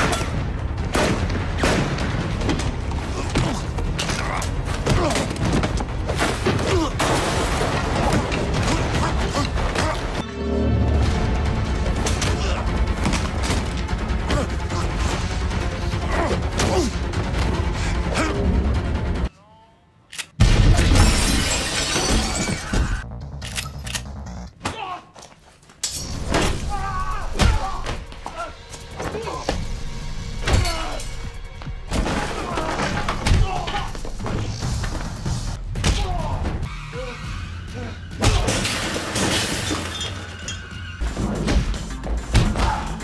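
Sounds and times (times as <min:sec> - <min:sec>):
dramatic film score: 0:00.0 - 0:21.4, 0:22.0 - 0:43.0
things breaking and clattering: 0:04.0 - 0:09.8, 0:38.2 - 0:42.6
glass shattering: 0:20.8 - 0:23.0, 0:38.4 - 0:40.7.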